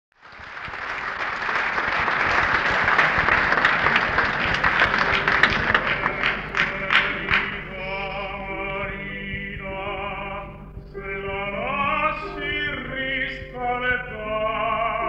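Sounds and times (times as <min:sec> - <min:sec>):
audience applauding: 0:00.1 - 0:08.3
piano notes: 0:02.8 - 0:15.0.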